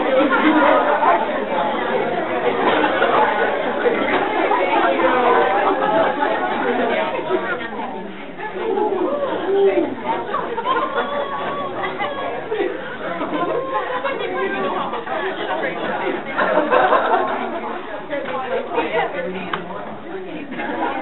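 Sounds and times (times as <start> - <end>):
babble of overlapping voices: 0.0 - 21.0.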